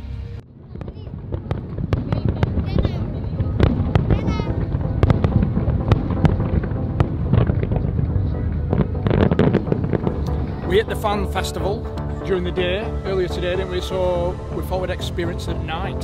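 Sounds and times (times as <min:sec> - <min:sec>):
low rumble of bursts: 0:00.0 - 0:16.0
fireworks bangs and crackles: 0:00.4 - 0:16.0.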